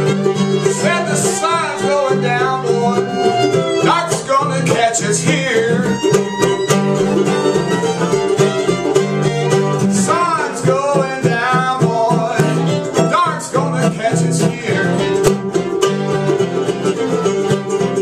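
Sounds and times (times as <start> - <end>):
acoustic guitar: 0.0 - 18.0
fiddle: 0.0 - 18.0
mandolin: 0.0 - 18.0.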